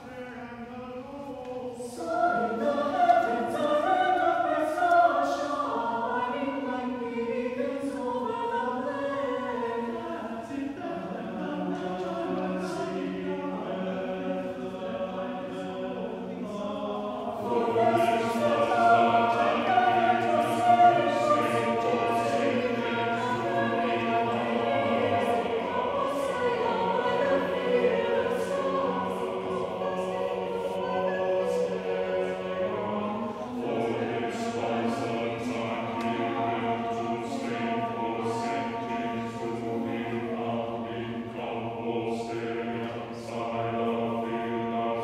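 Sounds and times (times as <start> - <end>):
mixed choir singing: 0.0 - 45.0.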